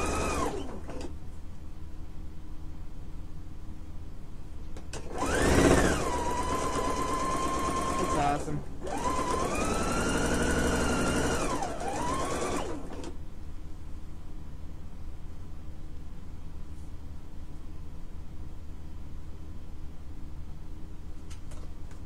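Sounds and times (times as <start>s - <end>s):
sewing machine motor whine: 0.0s - 1.1s, 5.0s - 13.1s.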